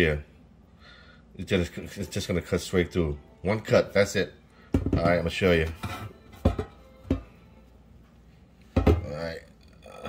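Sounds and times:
hen knocking on steel pan: 4.7 - 7.4, 8.8 - 9.1.

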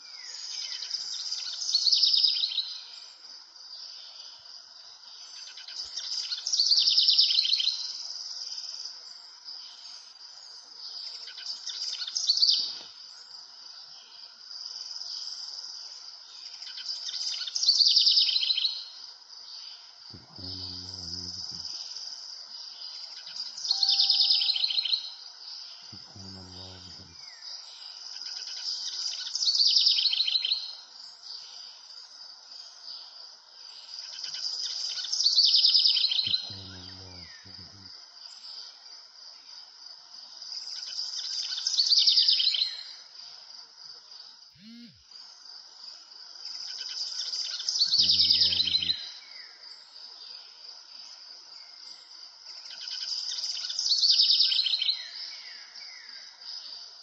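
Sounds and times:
insects chirring: 0.0 - 57.0
bird trilling call: 23.7 - 25.0.

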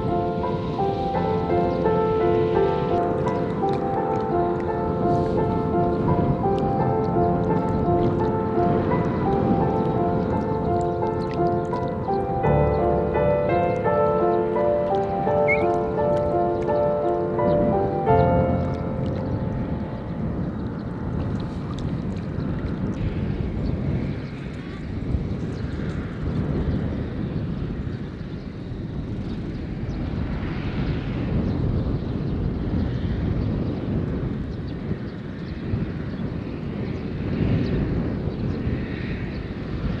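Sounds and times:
piano-like music: 0.0 - 23.0
low rumble: 0.0 - 27.6.

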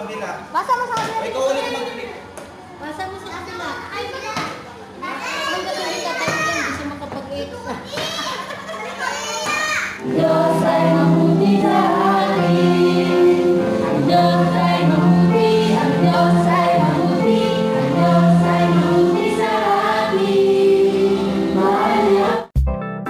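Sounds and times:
children shouting and squealing: 5.0 - 6.8, 7.8 - 10.0
song with singing and beat: 10.0 - 22.5.

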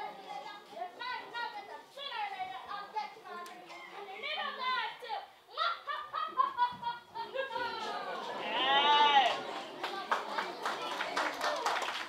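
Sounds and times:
child speaking: 0.2 - 5.6.

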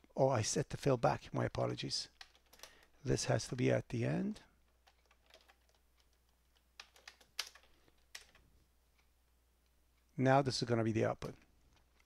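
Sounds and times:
computer keyboard key clicks: 4.8 - 8.4.

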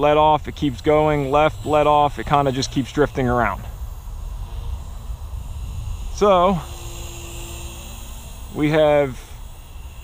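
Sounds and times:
electric rc helicopter whine: 0.0 - 10.0
wind buffeting microphone: 0.0 - 10.0.

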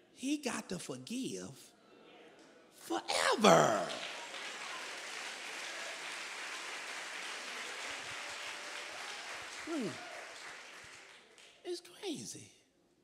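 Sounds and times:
audience applauding: 3.2 - 11.6.

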